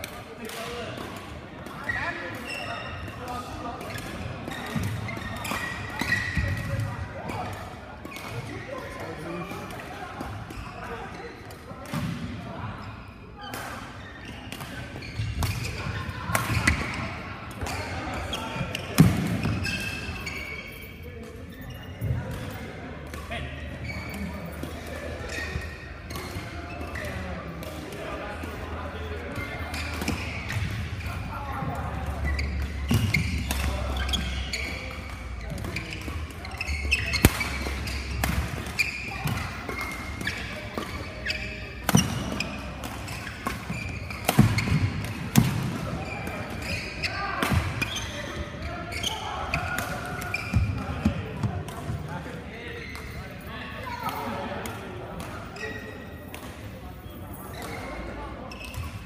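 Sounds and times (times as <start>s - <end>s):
racket striking shuttlecock: 36.9s - 41.0s, 41.8s - 45.7s.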